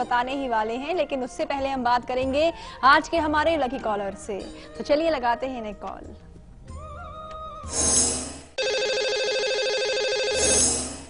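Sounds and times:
electronic telephone ring: 8.6 - 11.0.

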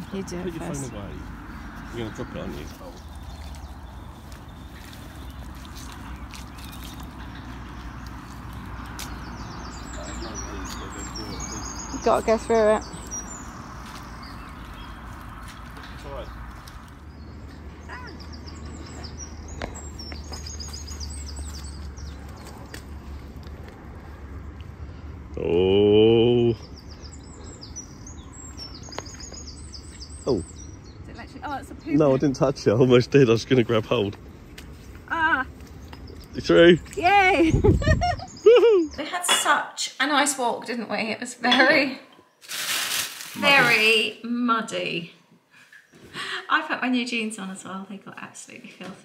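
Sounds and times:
bird chirping: 0.0 - 23.4, 24.4 - 39.2
footsteps squelching through mud: 2.7 - 9.3.

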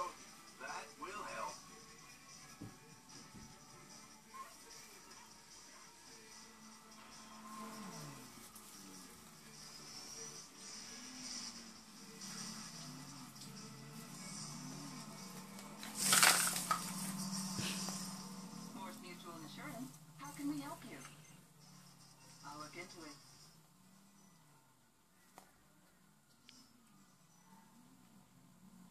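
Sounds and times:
background music with voice-like melody: 0.0 - 28.9.

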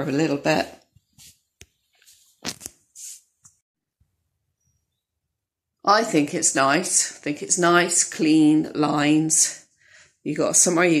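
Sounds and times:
soft rustling: 1.0 - 3.6.

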